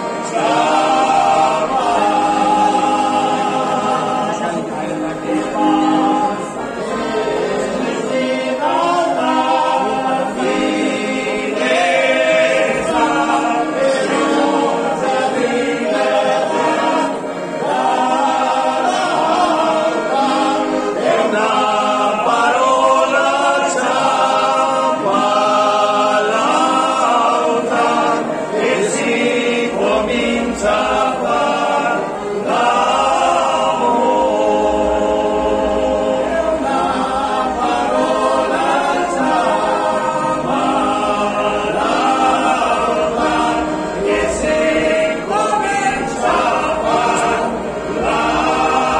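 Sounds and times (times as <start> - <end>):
men singing in harmony: 0.0 - 48.9.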